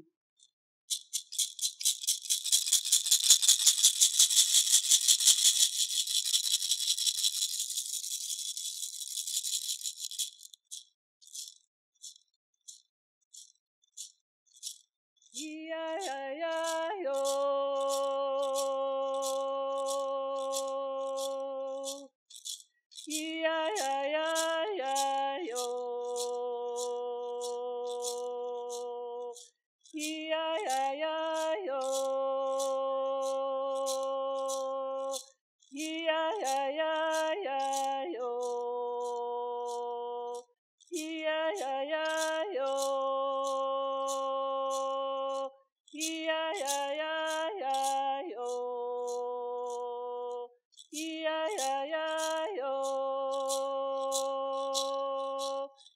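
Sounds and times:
hand rattle shaking: 0.4 - 49.9, 50.8 - 55.9
woman singing solo: 15.4 - 21.9.

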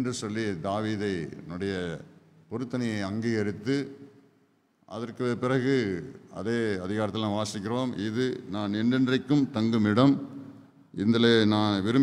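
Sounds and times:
man speaking: 0.0 - 4.1, 4.9 - 12.0.

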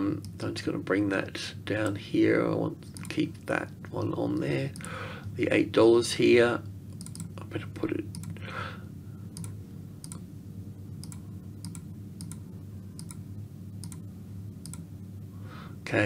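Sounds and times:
low steady hum: 0.0 - 16.0
computer mouse clicking: 6.9 - 7.4, 8.1 - 8.4, 9.4 - 10.2, 11.0 - 12.4, 13.0 - 13.2, 13.8 - 14.0, 14.6 - 14.8.

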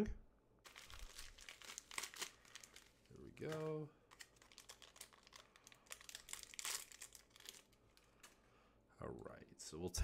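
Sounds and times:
plastic bag crinkling: 0.6 - 8.4.

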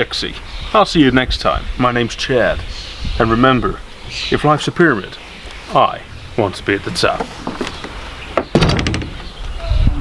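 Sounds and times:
glass-panelled door rattling: 8.5 - 9.3.

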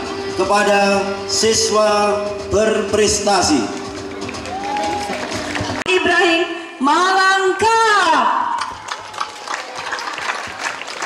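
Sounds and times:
crowd applause: 3.8 - 5.8, 8.6 - 11.0.

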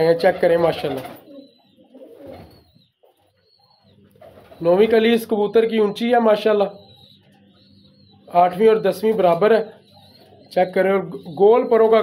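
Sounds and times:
pigeons cooing: 0.0 - 12.0.

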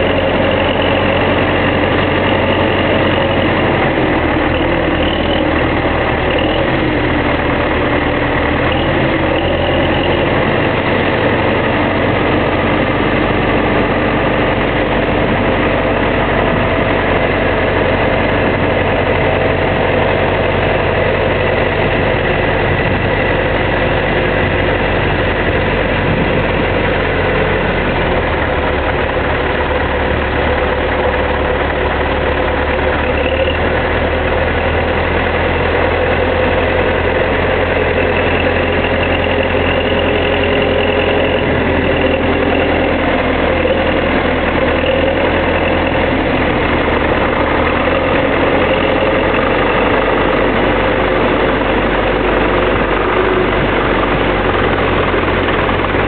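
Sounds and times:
diesel tractor engine running: 0.0 - 56.0.

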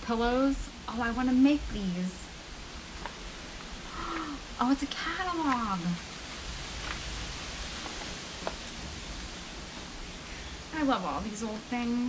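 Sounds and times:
steady background hiss: 0.0 - 12.0
old paper rustling: 2.9 - 4.3, 6.7 - 10.0.

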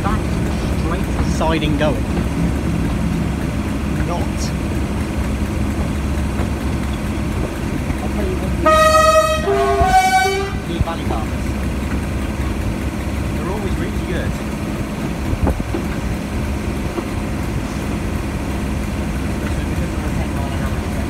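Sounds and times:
diesel locomotive engine running: 0.0 - 21.0
two-tone train horn: 8.5 - 11.0.

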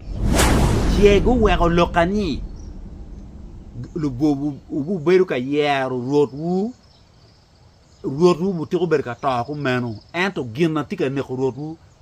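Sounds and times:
man talking: 0.9 - 2.4, 3.8 - 6.7, 8.1 - 11.8
high-pitched insect trill: 3.8 - 12.0.

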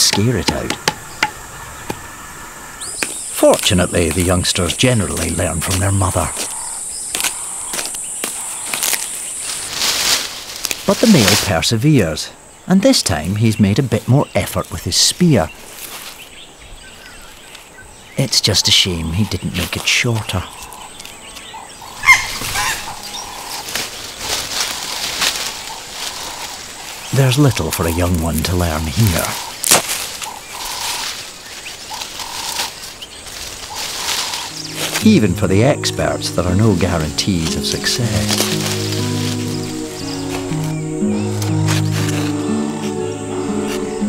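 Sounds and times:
sticks clicking and rustling: 2.9 - 11.5, 28.1 - 31.2, 31.9 - 43.0
high-pitched insect drone: 30.3 - 44.0.

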